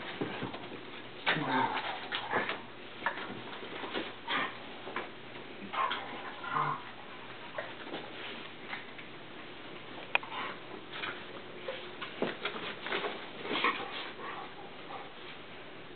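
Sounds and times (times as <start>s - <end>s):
dogs scuffling on carpet: 0.0s - 9.1s, 10.3s - 15.5s
dog growling: 1.3s - 2.6s, 5.6s - 7.0s.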